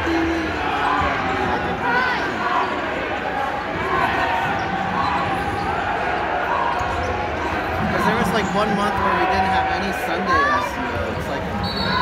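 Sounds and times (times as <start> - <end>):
arena crowd noise: 0.0 - 12.0
spectators chattering: 0.0 - 12.0.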